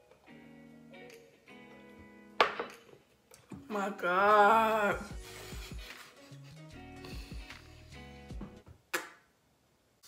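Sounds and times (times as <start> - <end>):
quiet background guitar music: 0.0 - 8.7
glass set down on tabletop: 2.4 - 2.8.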